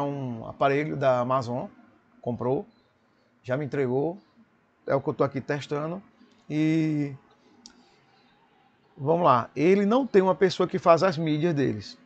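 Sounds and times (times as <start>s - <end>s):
person speaking: 4.9s - 7.3s.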